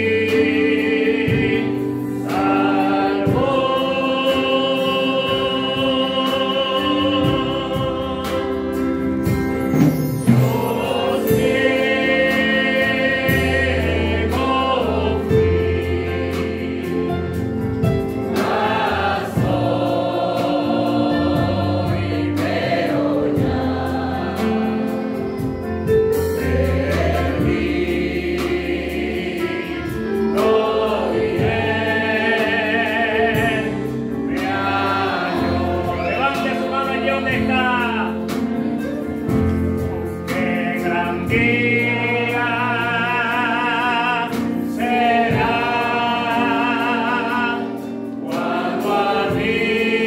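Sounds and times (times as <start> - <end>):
keyboard: 0.0 - 50.0
man singing into microphone: 40.3 - 47.7.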